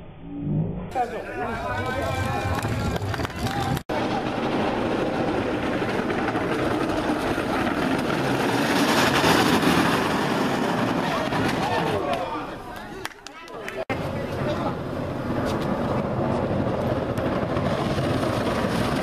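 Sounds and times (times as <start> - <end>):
wheel skidding: 1.2 - 12.4
cart wheels rolling on asphalt: 1.6 - 12.4, 14.0 - 19.0.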